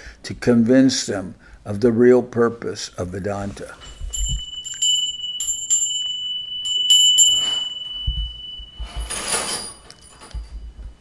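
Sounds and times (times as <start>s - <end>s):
small hand bell ringing: 3.8s - 10.8s.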